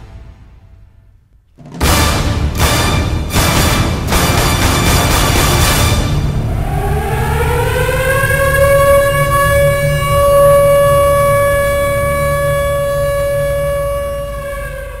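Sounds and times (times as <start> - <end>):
low rumble: 2.2 - 15.0
siren winding up: 6.3 - 15.0.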